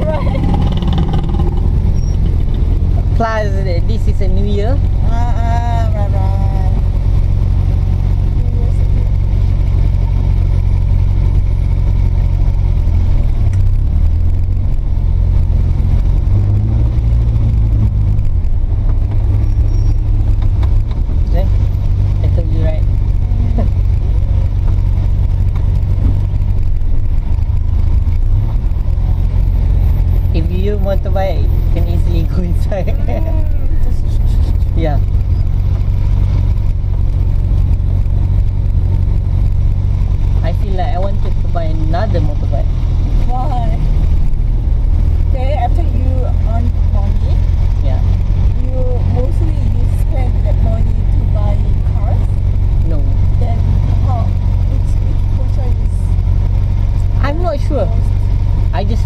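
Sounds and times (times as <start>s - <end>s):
van engine droning: 0.0s - 59.0s.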